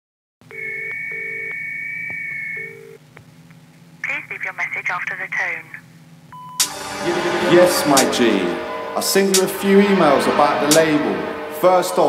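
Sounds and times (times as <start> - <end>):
steady high two-note tone: 6.5 - 12.0.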